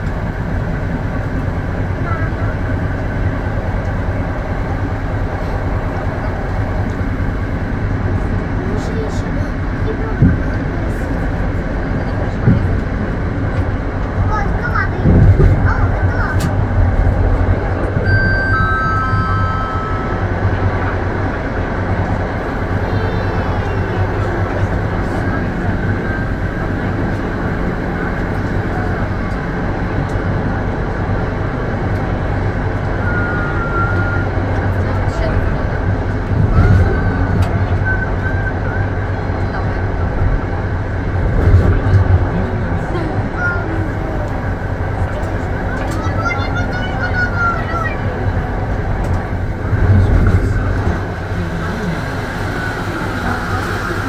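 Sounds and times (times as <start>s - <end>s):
electric train rumbling on track: 0.0s - 54.0s
high-pitched train squeals: 18.0s - 20.2s, 33.0s - 34.4s.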